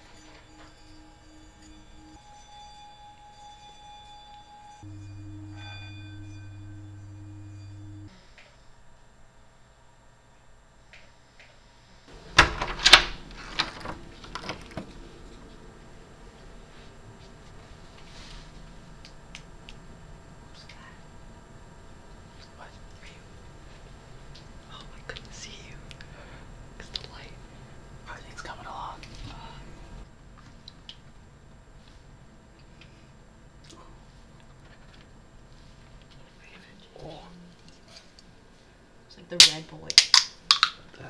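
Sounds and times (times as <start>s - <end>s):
low room hum: 0.0s - 41.0s
person whispering: 20.5s - 21.0s, 22.4s - 23.3s, 24.6s - 25.9s, 26.8s - 27.4s, 28.1s - 29.8s, 36.3s - 37.5s.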